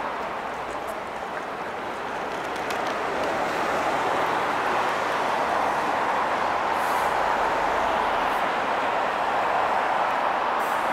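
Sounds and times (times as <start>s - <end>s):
city street traffic: 0.0s - 10.9s.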